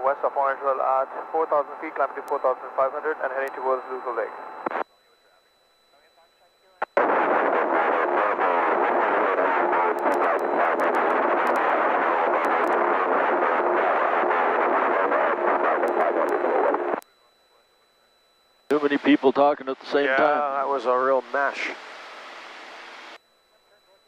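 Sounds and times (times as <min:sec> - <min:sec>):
garbled overlapping radio voices: 0:00.0 - 0:24.0
radio crackle: 0:00.0 - 0:24.0.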